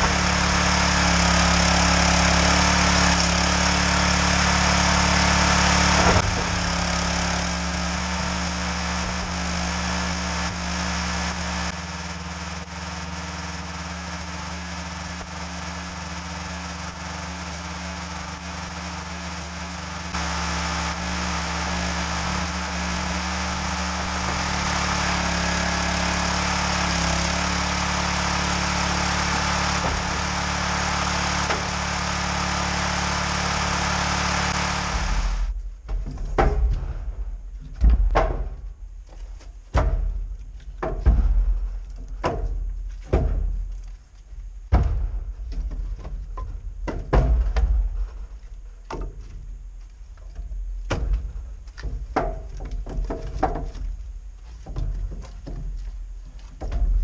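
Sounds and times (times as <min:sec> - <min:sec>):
small petrol engine running: 0:00.0 - 0:35.6.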